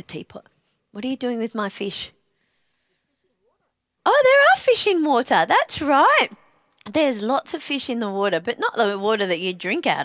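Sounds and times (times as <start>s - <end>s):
woman's voice: 0.0s - 2.2s, 4.1s - 10.0s.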